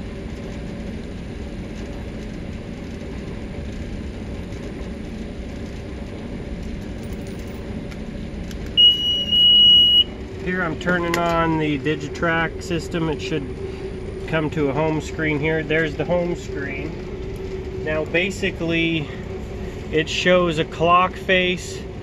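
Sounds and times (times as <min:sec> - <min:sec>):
low background rumble: 0:00.0 - 0:22.0
high-pitched electronic beep: 0:08.8 - 0:10.1.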